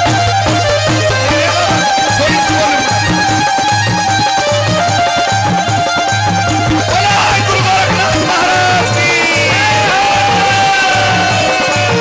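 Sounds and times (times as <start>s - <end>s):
devotional music with held melody: 0.0s - 12.0s
repeating drum beat: 0.0s - 12.0s.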